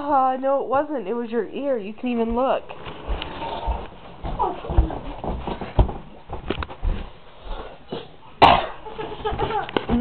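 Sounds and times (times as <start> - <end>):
person coughing: 8.4 - 8.8.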